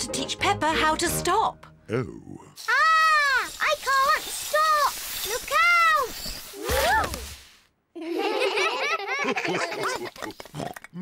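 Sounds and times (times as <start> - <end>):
children laughing: 7.9 - 10.5.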